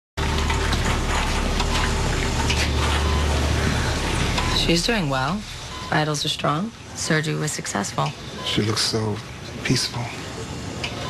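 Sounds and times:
low hum: 0.2 - 7.8.

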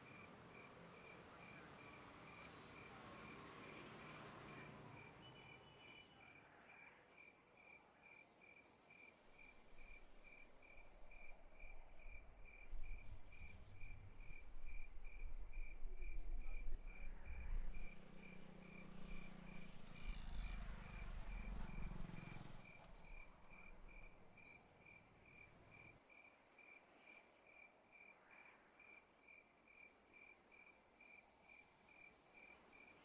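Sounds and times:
crickets chirping: 0.0 - 33.0.

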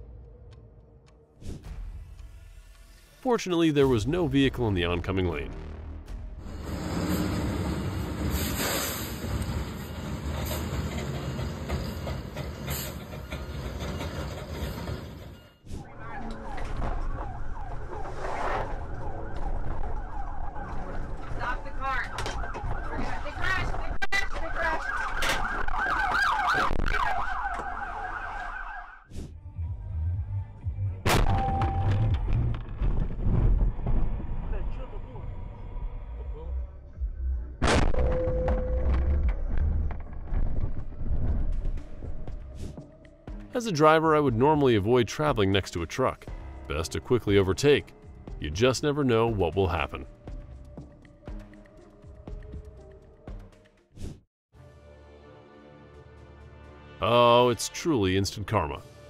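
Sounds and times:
wavering emergency siren: 15.8 - 29.1.

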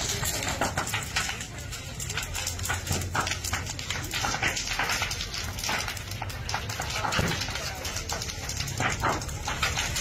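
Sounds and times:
fire crackling and popping: 0.0 - 10.0
fire rumbling: 0.0 - 10.0.

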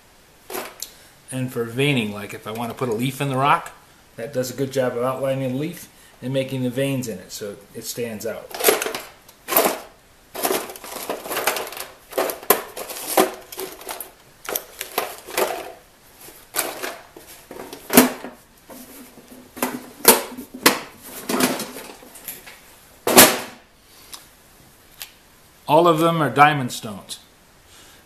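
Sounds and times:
small hard items rattling: 0.5 - 0.8, 8.4 - 22.2.

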